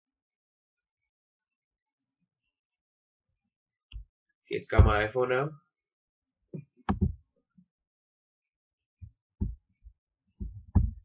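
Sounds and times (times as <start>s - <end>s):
soft low thumps: 4.7s - 5.0s, 6.9s - 7.2s, 9.0s - 9.7s, 10.4s - 11.0s.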